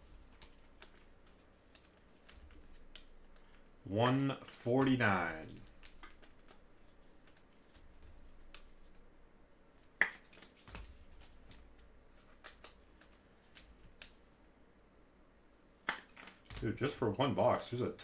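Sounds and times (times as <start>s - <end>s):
trading cards clicking: 4.8s - 6.6s, 12.2s - 14.2s.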